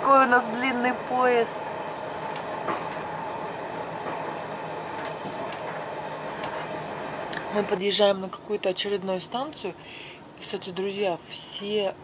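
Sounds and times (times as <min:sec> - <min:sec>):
train wheels rumbling on track: 0:00.0 - 0:08.0
faint constant hum: 0:00.0 - 0:12.0.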